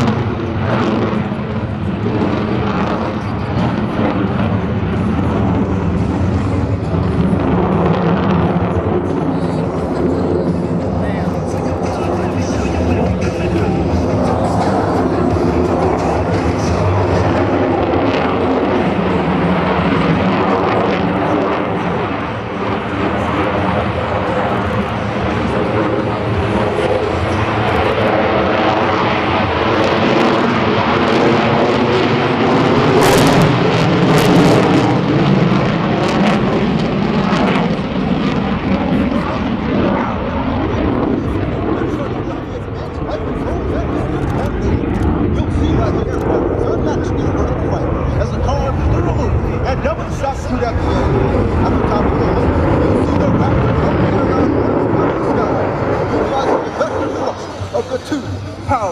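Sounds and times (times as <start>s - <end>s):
jet engine roar: 0.0s - 58.9s.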